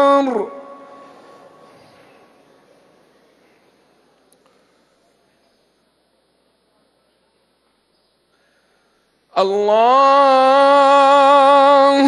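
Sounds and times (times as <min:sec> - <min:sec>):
man chanting call to prayer: 0:00.0 - 0:01.7, 0:09.3 - 0:12.0.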